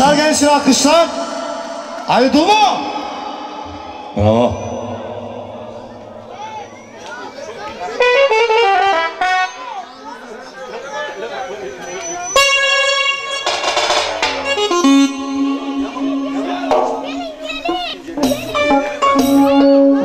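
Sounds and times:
electronic keyboard notes and chords: 0.0 - 10.5, 12.1 - 20.0
voices and children talking: 0.0 - 20.0.

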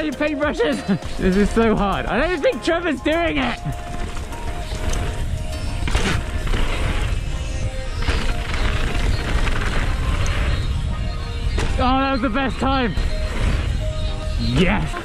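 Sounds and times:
music: 0.0 - 15.0
tyres rumbling on dirt: 0.0 - 15.0
wind rush: 2.9 - 15.0.

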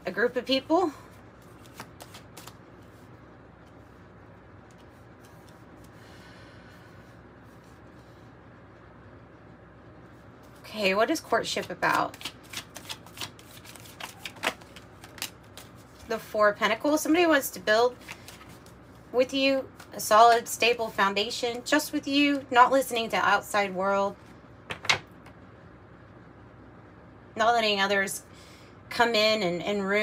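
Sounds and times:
cards being shuffled: 1.4 - 3.9, 4.6 - 6.0, 11.5 - 16.1, 17.9 - 18.8.

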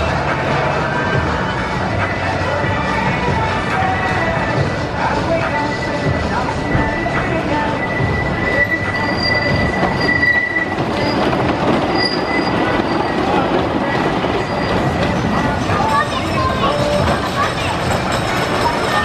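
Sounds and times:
roller coaster rumbling on track: 0.0 - 19.0
high-pitched wheel squeal: 5.6 - 17.0.

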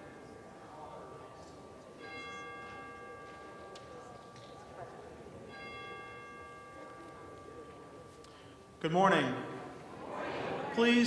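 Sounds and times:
church bell tolling: 0.0 - 9.7.

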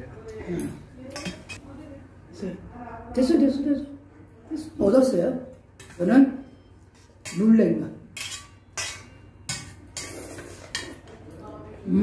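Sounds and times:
metal utensils clinking on bowls: 1.1 - 1.6, 6.8 - 11.2.

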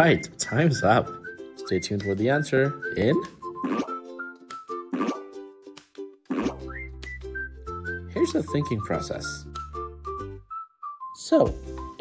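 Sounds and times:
light children's music: 0.0 - 12.0.

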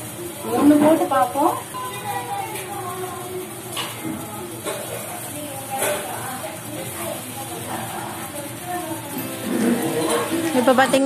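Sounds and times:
deep-frying sizzle in hot oil: 0.0 - 11.0.

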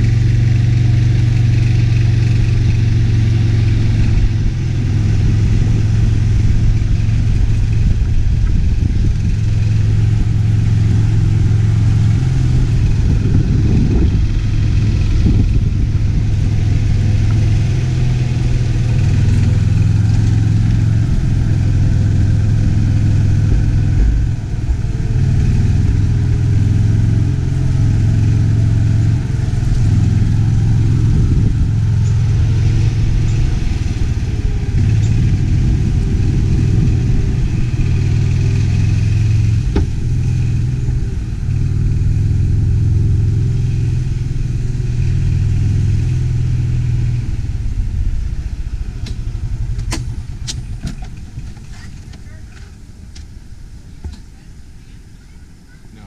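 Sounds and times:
golf cart motor hum: 0.0 - 56.0.

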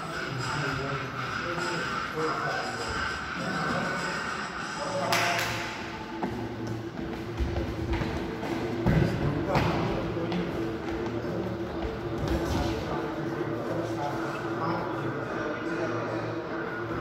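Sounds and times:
voices echoing in a hall: 0.0 - 17.0.

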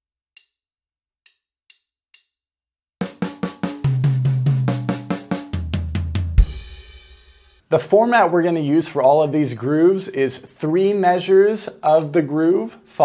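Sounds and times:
light clicks counting tempo: 0.3 - 0.6
crash cymbal and bass drum: 3.0 - 7.6
drum fill on snare and toms: 3.0 - 7.6.

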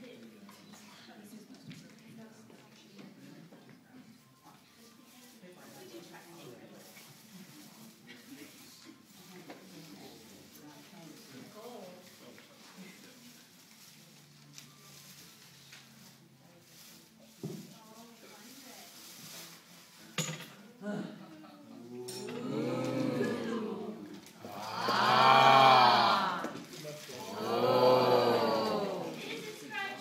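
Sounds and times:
faint room murmur: 0.0 - 30.0.

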